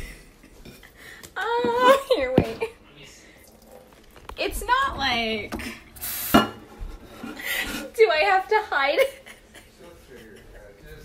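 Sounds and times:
dishes rubbing and knocking: 3.6 - 7.9
dish scraping: 3.7 - 7.9
dishes clinking: 6.3 - 7.4.

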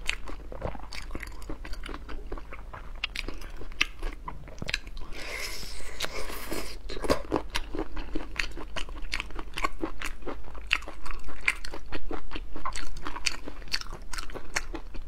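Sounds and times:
close chewing with mouth clicks: 0.0 - 15.0.

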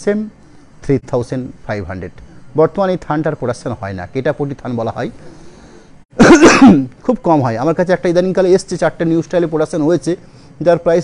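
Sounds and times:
man clearing his throat: 6.2 - 6.9.

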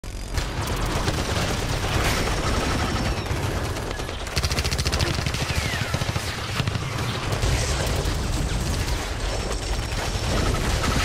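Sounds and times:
rapid automatic gunfire: 0.2 - 11.0.

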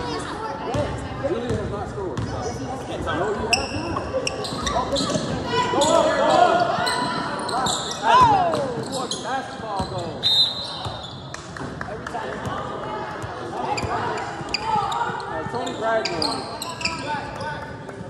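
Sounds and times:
sneakers squeaking: 1.4 - 11.5, 13.2 - 18.0.

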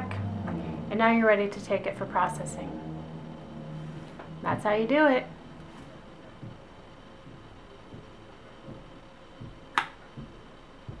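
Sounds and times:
soft low thumps: 0.0 - 11.0.

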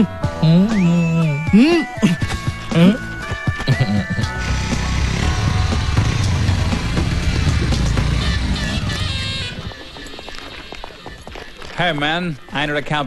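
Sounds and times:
music playing: 0.0 - 10.4
vehicle engine rumbling: 4.1 - 11.2.

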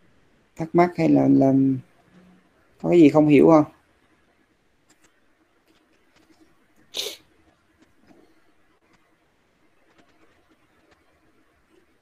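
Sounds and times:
person sneezing: 6.9 - 7.2.

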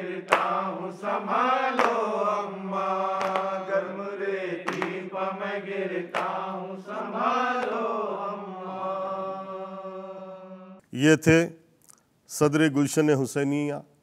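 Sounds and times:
chest-beating slaps: 0.3 - 0.6, 1.8 - 2.1, 3.2 - 3.6, 4.7 - 5.0, 6.1 - 6.4.

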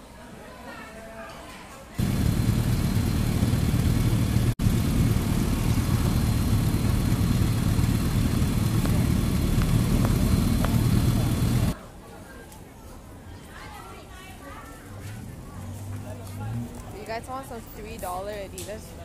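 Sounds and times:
car engines running: 2.0 - 11.8
motorcycle engines: 2.0 - 11.8, 14.8 - 19.0.

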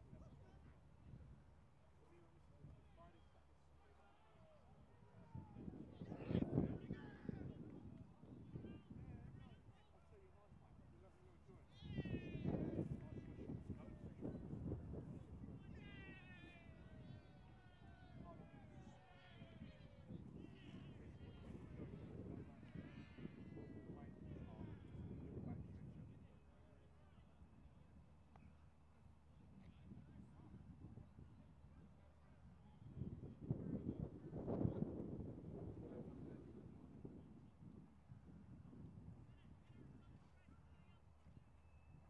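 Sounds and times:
wind rumble on microphone: 5.0 - 28.1, 29.3 - 42.0.

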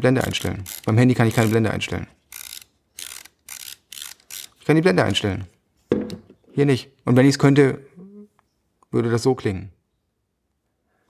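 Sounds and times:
camera aperture ring clicking: 2.3 - 4.6.

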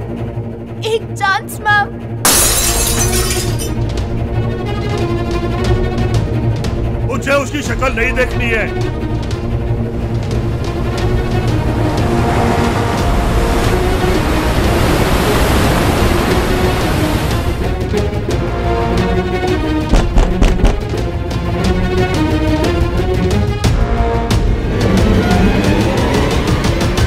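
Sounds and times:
film score music with pulsing bass: 0.0 - 2.3, 3.7 - 27.0
tinkling glass shards: 2.3 - 3.7
glass smashing on a hard floor: 2.3 - 3.8
sea surf breaking on shore: 11.8 - 17.7.

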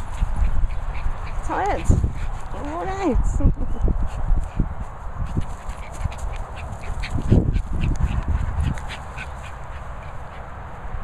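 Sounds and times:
dog panting: 0.0 - 2.9, 4.0 - 10.6.

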